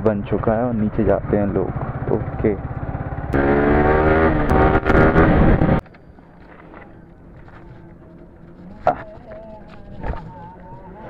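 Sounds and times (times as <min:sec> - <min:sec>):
motorcycle engine running: 0:00.2 - 0:05.8.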